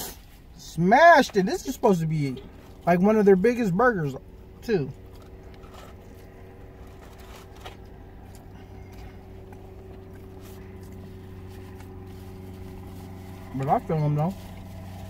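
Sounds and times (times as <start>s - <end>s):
car engine idling: 0.0s - 15.0s
chewing: 4.9s - 13.4s.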